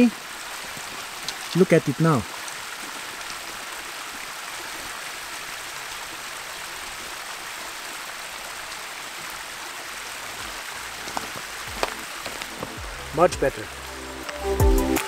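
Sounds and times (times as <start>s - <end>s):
water trickling down rock: 0.0s - 14.4s.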